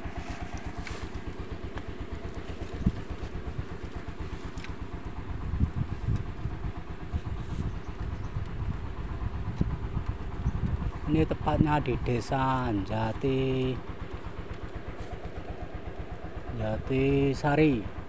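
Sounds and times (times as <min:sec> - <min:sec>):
small motorcycle engine idling: 0:00.0 - 0:18.0.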